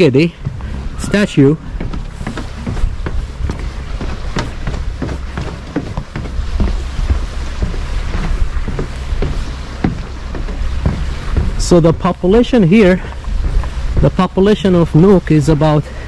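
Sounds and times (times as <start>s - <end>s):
footsteps on wooden boards: 0.0s - 16.0s
wind rumbling on microphone: 0.0s - 16.0s.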